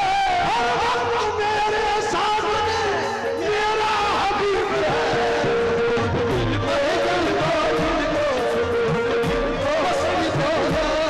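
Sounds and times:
man singing gliding phrase: 0.0s - 11.0s.

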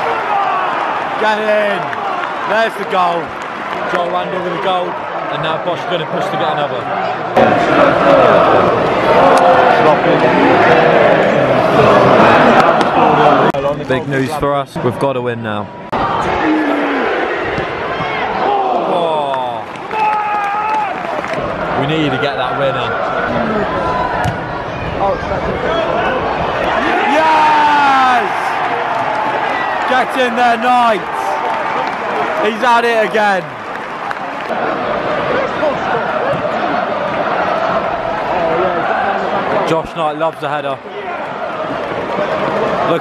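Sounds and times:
stadium crowd shouting and chanting: 0.0s - 43.0s
long held shout: 18.4s - 21.0s, 26.8s - 28.8s.

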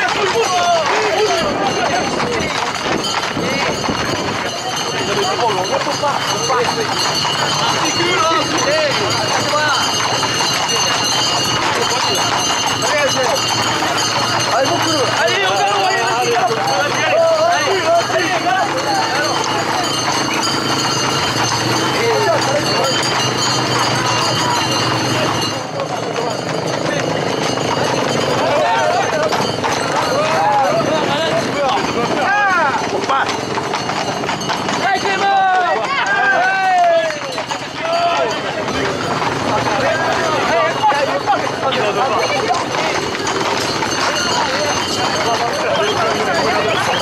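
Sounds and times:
crowd running and calling out: 0.0s - 47.0s
horses' hooves on paved road: 0.0s - 47.0s.

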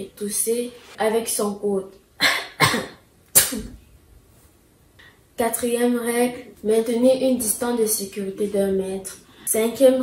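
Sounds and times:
girl coughing: 2.2s - 3.8s.

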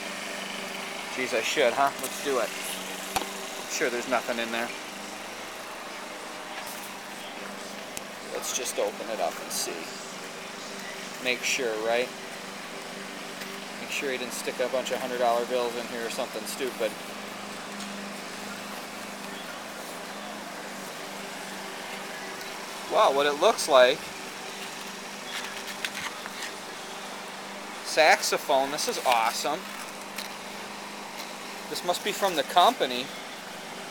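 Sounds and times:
distant motor running: 0.0s - 33.9s
outdoor background noise: 0.0s - 33.9s.

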